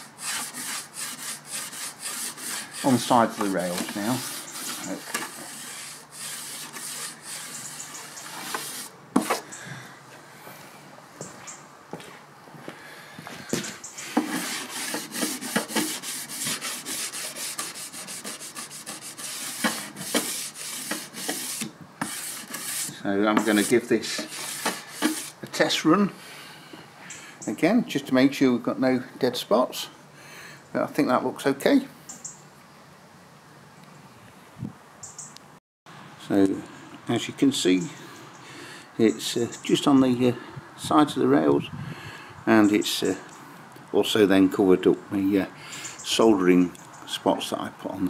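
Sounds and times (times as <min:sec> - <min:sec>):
model railway track being scrubbed: 0:00.0 - 0:09.4, 0:14.0 - 0:25.4.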